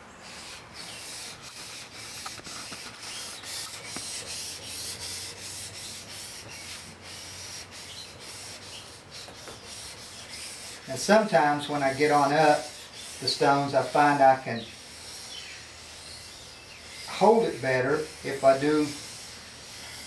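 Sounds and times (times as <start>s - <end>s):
blade rubbing on whetstone: 0.2s - 20.0s.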